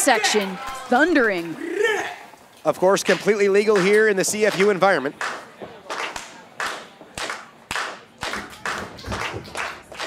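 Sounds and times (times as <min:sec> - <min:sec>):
rhythmic hand clapping: 0:03.0 - 0:10.0.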